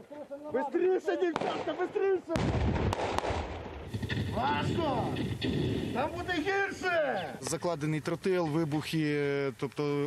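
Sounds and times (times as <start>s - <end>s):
sharp cracks: 1.3s - 6.4s
explosion with deep rumble: 2.4s - 6.0s.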